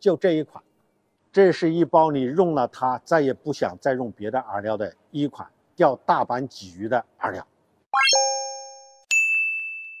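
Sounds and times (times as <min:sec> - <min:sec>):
sharp high ding: 0:08.0 - 0:10.0
two-note chime: 0:08.0 - 0:10.0.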